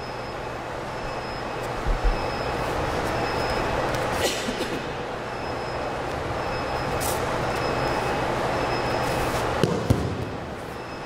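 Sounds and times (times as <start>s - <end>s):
rumbling hall background noise: 0.0s - 11.0s.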